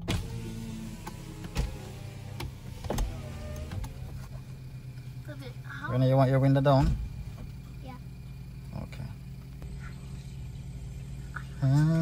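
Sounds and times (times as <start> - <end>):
car engine idling hum: 0.0 - 12.0.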